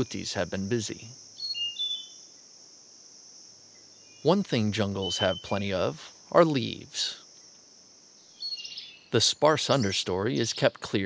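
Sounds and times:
rainforest ambience: 0:00.0 - 0:11.0
high bird chirps: 0:01.3 - 0:02.4, 0:03.7 - 0:06.0, 0:07.3 - 0:10.8.

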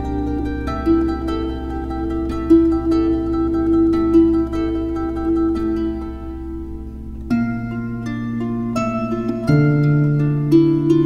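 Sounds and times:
plucked harp notes: 0:00.0 - 0:11.0
steady low drone: 0:00.0 - 0:11.0.

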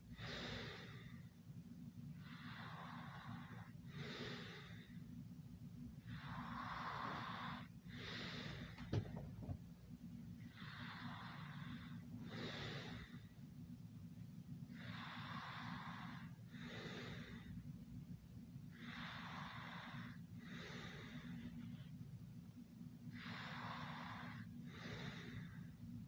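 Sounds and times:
slow noisy breathing: 0:00.0 - 0:26.0
steady low hum: 0:00.0 - 0:26.0.

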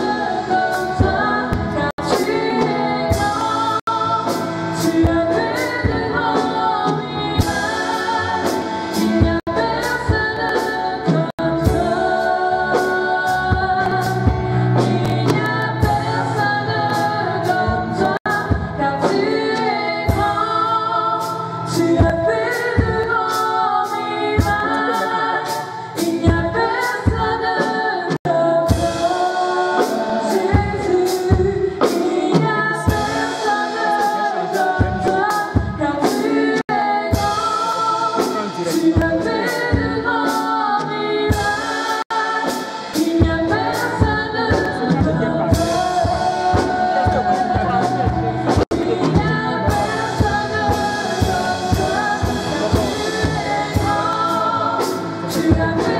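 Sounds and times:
gospel song with singing voices: 0:00.0 - 0:55.9.

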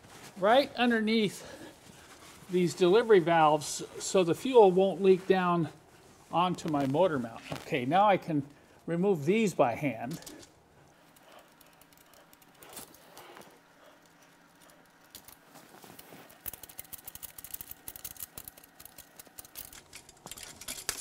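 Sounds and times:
metal fuel lines clicking and rattling: 0:09.8 - 0:21.0.

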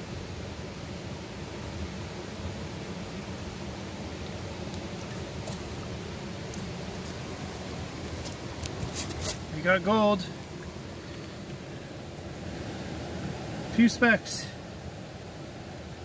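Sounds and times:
river rushing: 0:00.0 - 0:16.0.

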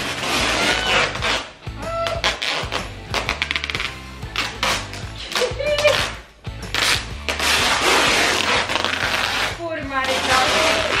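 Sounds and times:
background music with low bass: 0:00.0 - 0:11.0
packing tape pulled off roll: 0:00.0 - 0:11.0.

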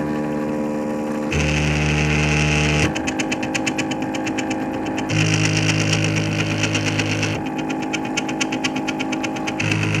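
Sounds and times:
steady hum: 0:00.0 - 0:10.0
printer stepper motors buzzing: 0:01.3 - 0:10.0
fast even ticking: 0:03.0 - 0:10.0.

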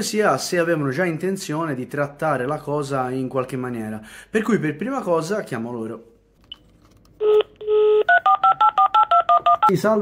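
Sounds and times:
keypad dialing beeps: 0:07.2 - 0:09.7
phone dial tone: 0:07.2 - 0:09.7.

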